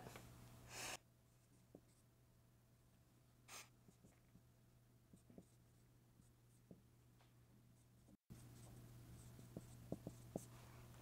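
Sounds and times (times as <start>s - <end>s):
marker writing on whiteboard: 5.1s - 6.8s, 8.0s - 10.6s.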